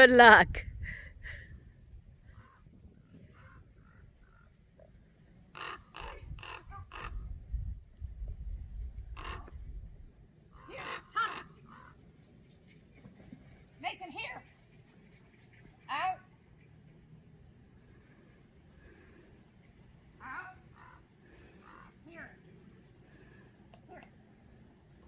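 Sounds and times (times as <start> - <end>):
wind rumble on microphone: 0.0 - 4.3, 5.9 - 10.7.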